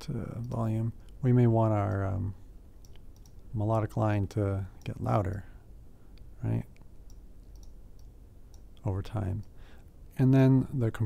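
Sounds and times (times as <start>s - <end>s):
computer mouse clicks: 0.4s - 1.2s, 2.8s - 3.5s, 6.2s - 9.6s.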